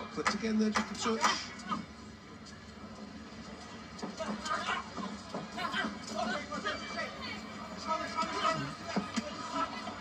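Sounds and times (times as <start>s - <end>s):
boxing commentator on television: 0.0s - 10.0s.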